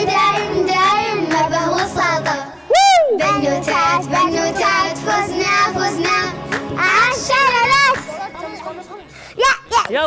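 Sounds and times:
music track: 0:00.0 - 0:09.5.

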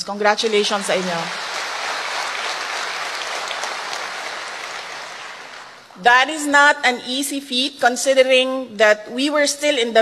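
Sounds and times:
audience applauding: 0:00.2 - 0:06.0.

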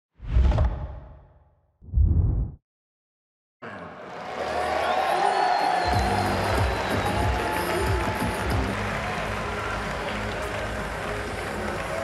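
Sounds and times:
deep whoosh: 0:01.9 - 0:02.6.

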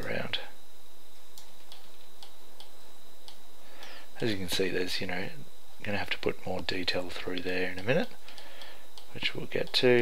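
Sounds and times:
computer mouse clicks: 0:01.4 - 0:03.9.

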